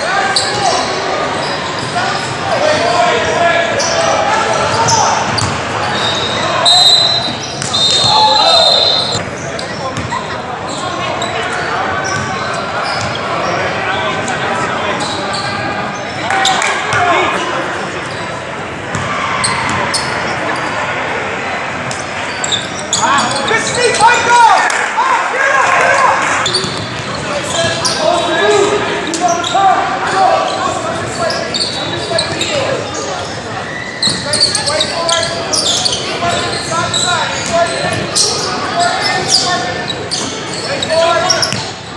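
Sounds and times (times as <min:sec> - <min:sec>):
crowd shouting: 0:00.0 - 0:09.2
spectators and players voices: 0:00.0 - 0:41.9.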